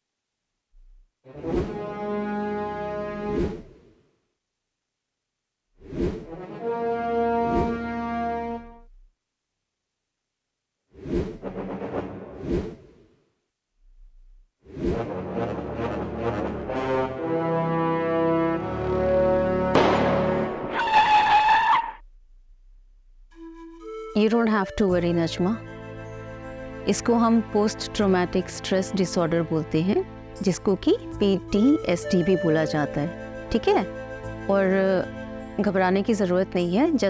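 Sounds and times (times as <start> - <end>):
low horn-like tone: 6.3 - 9.1, 15.1 - 22.2
sharp musical hit: 19.7 - 20.8
car tyres screeching: 20.4 - 22.0.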